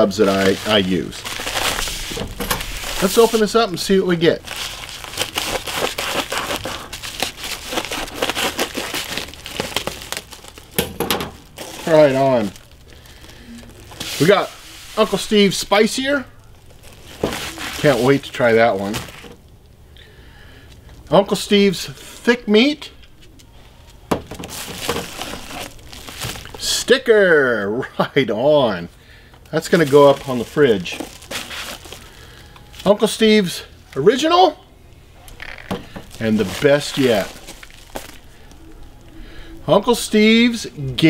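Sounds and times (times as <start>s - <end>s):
packaging crinkling and rustling: 0.0s - 19.8s, 23.0s - 27.0s, 29.4s - 33.3s, 35.3s - 39.2s
scissors cutting envelope: 4.5s - 10.3s.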